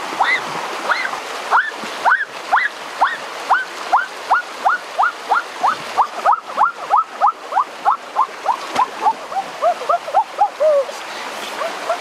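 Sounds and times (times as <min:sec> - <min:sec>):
stream rushing: 0:00.0 - 0:12.0.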